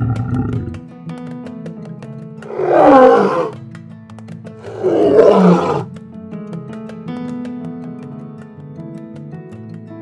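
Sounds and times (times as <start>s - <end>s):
person imitating lion roar: 0.0s - 0.8s, 2.5s - 3.6s, 4.6s - 5.9s.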